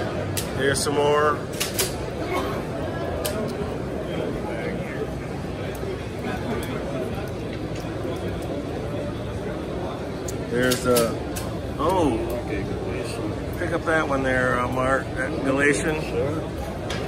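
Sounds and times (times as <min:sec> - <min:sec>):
crowd babble: 0:00.0 - 0:17.0.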